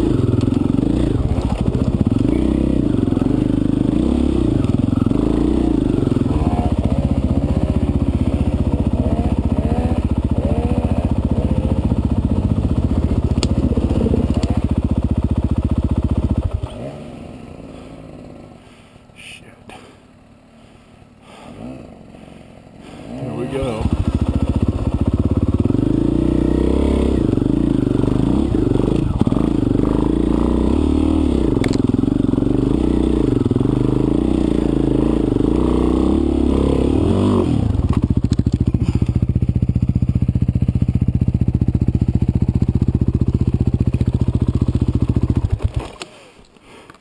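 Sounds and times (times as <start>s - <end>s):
dirt bike engine revving: 0.0s - 18.8s, 19.8s - 46.0s.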